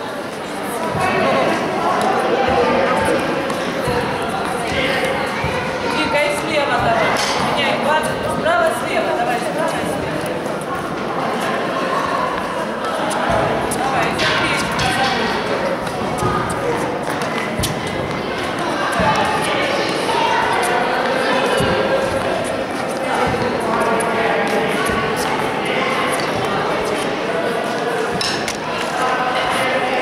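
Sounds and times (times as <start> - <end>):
chatter of many voices: 0.0 - 30.0
ball bouncing on hard court: 6.4 - 7.6, 13.1 - 19.5, 23.1 - 25.4.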